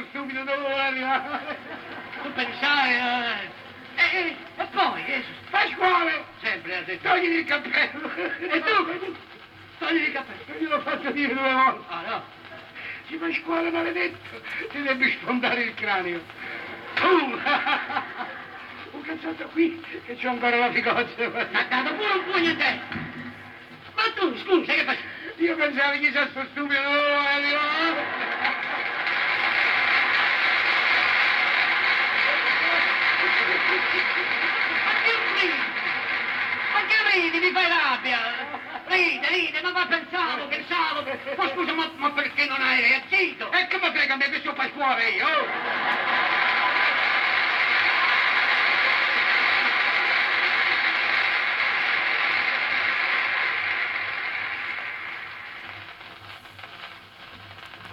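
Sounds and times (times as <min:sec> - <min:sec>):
record playback noise rush: 0:00.0 - 0:57.9
audience laughter and applause: 0:00.5 - 0:05.5, 0:16.2 - 0:23.8, 0:27.6 - 0:42.0, 0:45.2 - 0:56.1.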